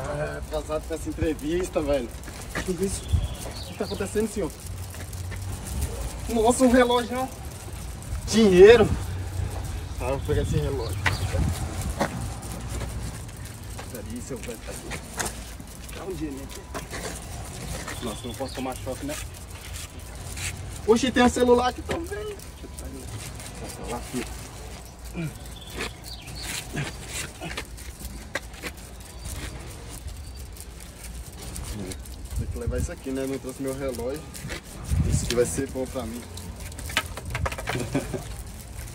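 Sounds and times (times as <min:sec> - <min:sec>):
faint clicks and rustles: 0:00.0 - 0:38.9.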